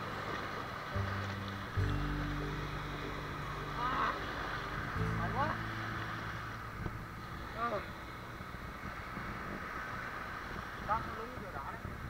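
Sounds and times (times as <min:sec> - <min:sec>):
waves washing over sand: 0:00.0 - 0:12.0
wind buffeting microphone: 0:00.0 - 0:12.0.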